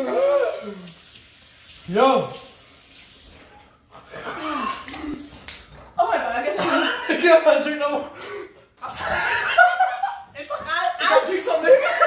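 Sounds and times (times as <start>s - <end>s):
vocal exclamation: 0.0s - 0.9s, 4.1s - 5.2s
people chuckling: 8.8s - 10.6s
people talking: 10.3s - 12.0s.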